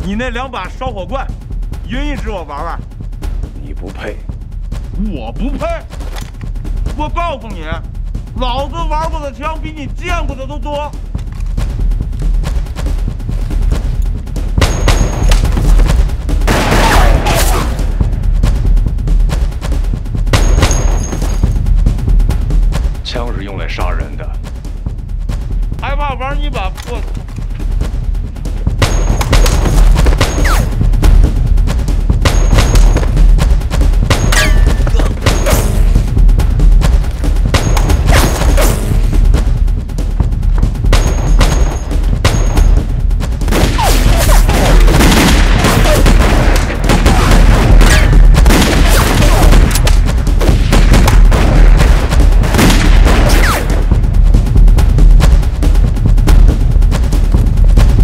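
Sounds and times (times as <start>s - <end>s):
dramatic film music: 0.0s - 58.0s
rapid rifle gunfire: 43.4s - 54.0s.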